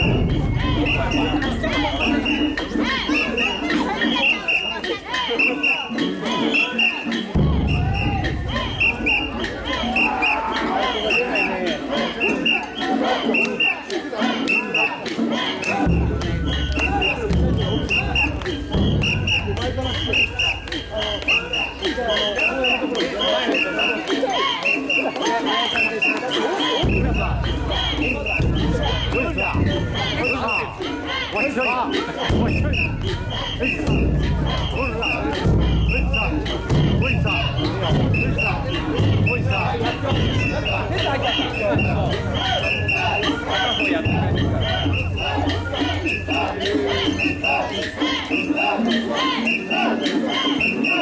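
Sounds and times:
crowd chanting rhythmically: 0:00.0 - 0:51.0.

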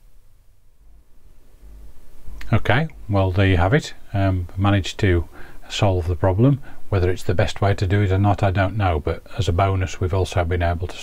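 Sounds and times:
faint hiss: 0:00.0 - 0:11.0
steady low hum: 0:00.0 - 0:11.0.

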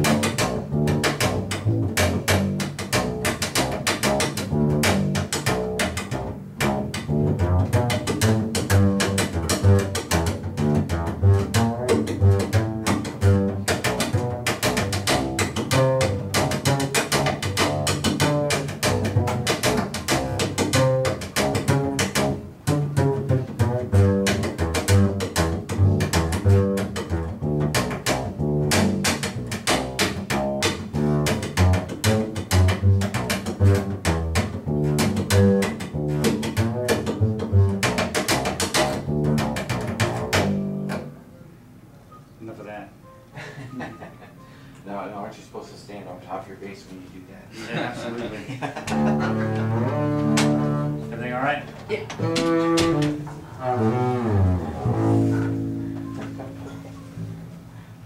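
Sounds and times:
plucked double bass: 0:00.0 - 0:41.8, 0:47.6 - 0:58.0.

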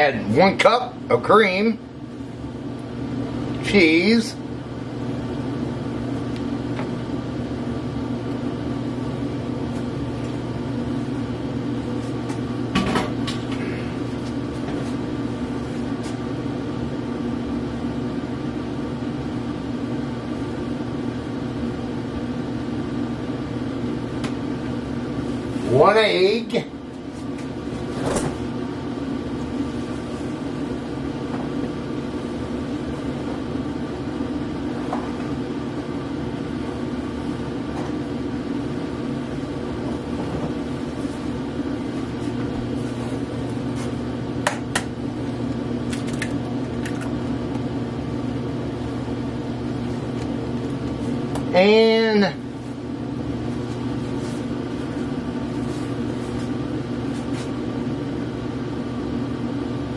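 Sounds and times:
appliance mechanical hum: 0:00.0 - 0:59.9.

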